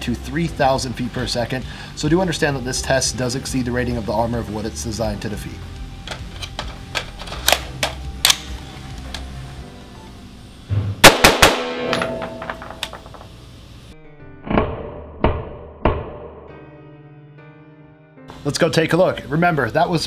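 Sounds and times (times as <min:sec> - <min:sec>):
background music: 0:00.0 - 0:20.0
rifle shots: 0:11.0 - 0:12.2.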